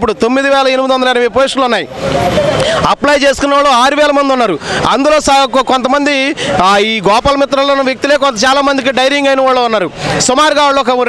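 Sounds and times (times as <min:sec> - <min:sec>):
man speaking into a microphone: 0:00.0 - 0:11.0
vehicle passing: 0:01.7 - 0:09.1.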